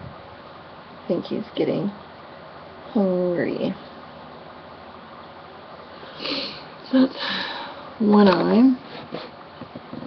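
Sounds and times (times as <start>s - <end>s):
faint room hiss: 0.0s - 10.0s
person sniffing: 6.1s - 7.4s.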